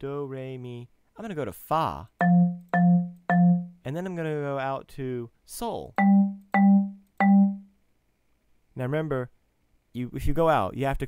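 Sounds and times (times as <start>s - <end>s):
marimba notes: 2.2s - 3.9s, 6.0s - 7.7s.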